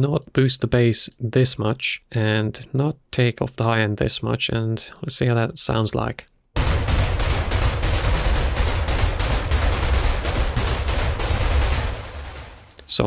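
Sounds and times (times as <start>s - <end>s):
synthesized noise percussion hits: 6.6s - 12.8s.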